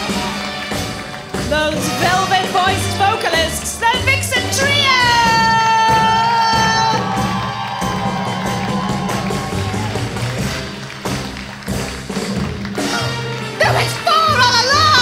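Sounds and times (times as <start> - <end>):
upbeat music over sound system: 0.0 - 15.0
audience cheering: 4.9 - 11.9.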